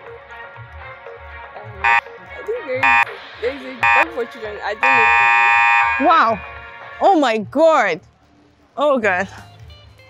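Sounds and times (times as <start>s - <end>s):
background music with steady beat: 0.0s - 10.0s
loud electronic buzzer beep: 1.8s - 2.0s, 2.8s - 3.2s, 3.8s - 4.1s, 4.8s - 6.6s.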